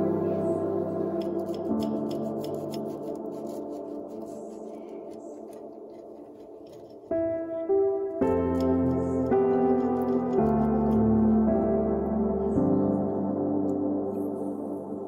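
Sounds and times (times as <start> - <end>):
soft ambient music with held chords: 0.0 - 15.0.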